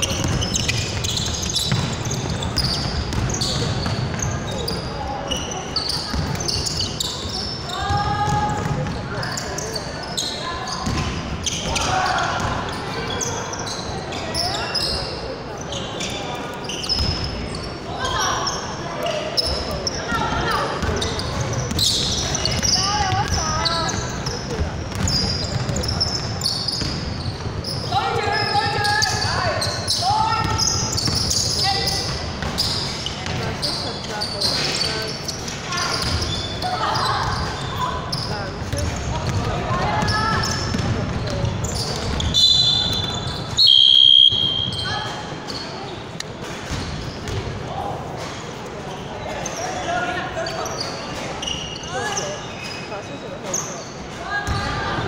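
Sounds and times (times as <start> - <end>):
basketball bouncing on wooden court: 0.0 - 4.8, 6.0 - 6.6, 7.8 - 9.1, 10.8 - 12.7, 17.0 - 17.3, 20.8 - 29.4, 32.0 - 33.6, 38.6 - 43.5, 46.7 - 47.6
players calling: 0.0 - 46.2
whistle blast: 42.4 - 44.9.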